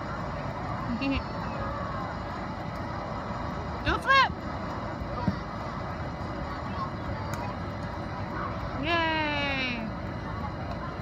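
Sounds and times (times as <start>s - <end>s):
faint outdoor background noise: 0.0s - 11.0s.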